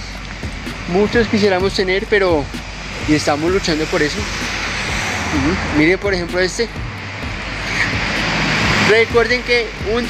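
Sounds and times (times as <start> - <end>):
vehicle passing: 0.0 - 10.0.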